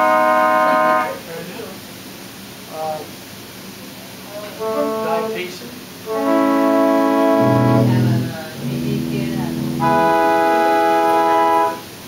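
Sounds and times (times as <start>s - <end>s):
pipe organ chords: 6.1s - 11.8s.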